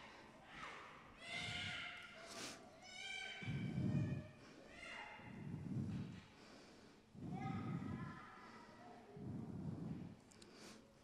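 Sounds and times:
low rumble of movement: 0:03.4 - 0:04.3, 0:05.3 - 0:06.2, 0:07.2 - 0:08.2, 0:09.2 - 0:10.2.

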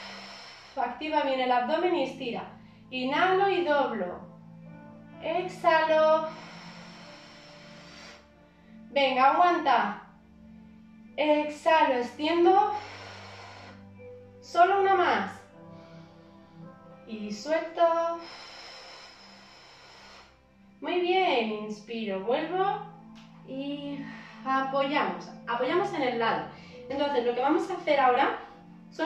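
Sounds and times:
breathy out-breath: 0:00.0 - 0:00.8, 0:02.6 - 0:02.9, 0:06.2 - 0:08.9, 0:12.7 - 0:14.1, 0:15.4 - 0:16.6, 0:18.1 - 0:20.6
soft background music: 0:00.0 - 0:29.0.

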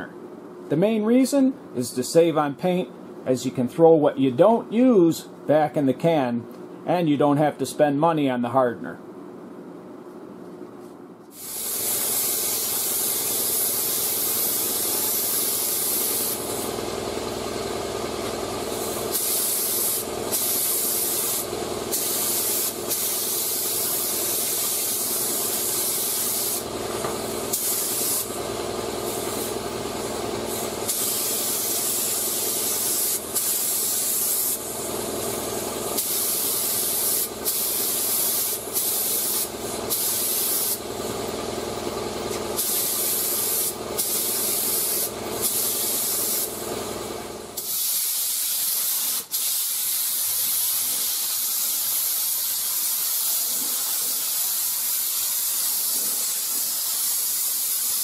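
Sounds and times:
spray gun air hiss: 0:11.3 - 0:17.7, 0:18.3 - 0:40.9, 0:42.3 - 0:46.7, 0:47.3 - 0:58.0.

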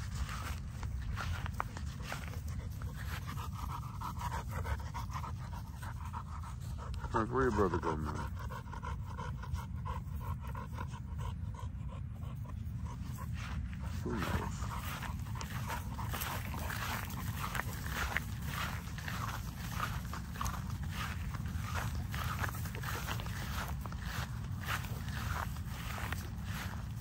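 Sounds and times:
rustling in grass: 0:00.0 - 0:06.9, 0:12.8 - 0:27.0
dogs sniffing and panting: 0:00.0 - 0:27.0.

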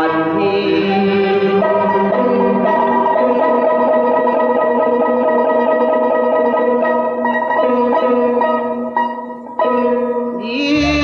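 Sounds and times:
opera accompaniment long held notes: 0:00.0 - 0:04.8, 0:10.6 - 0:11.0
plucked string instrument: 0:00.0 - 0:11.0.

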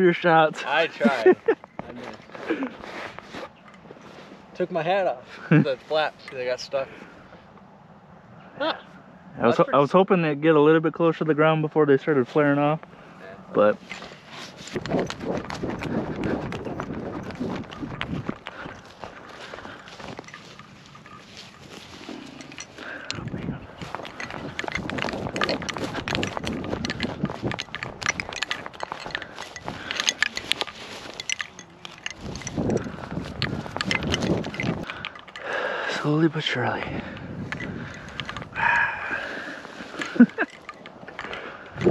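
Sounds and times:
footsteps crunching through grass: 0:13.6 - 0:34.8
rustling and handling knocks: 0:13.8 - 0:35.5.

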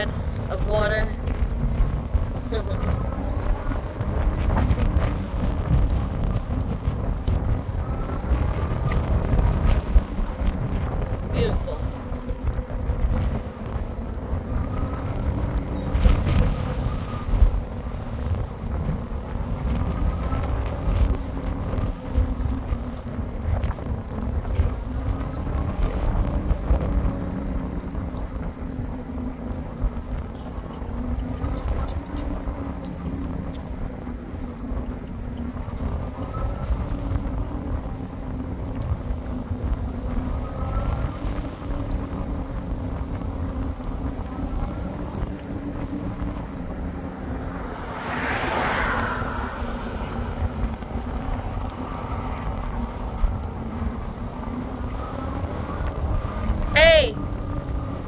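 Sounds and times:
wind and road noise cycling: 0:00.0 - 0:58.0.

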